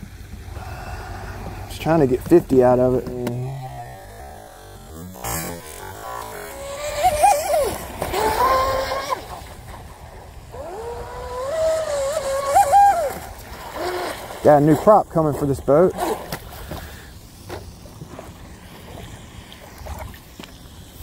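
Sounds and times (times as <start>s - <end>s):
water splashing: 0.1s - 21.0s
electric boat motor whining: 0.5s - 14.2s.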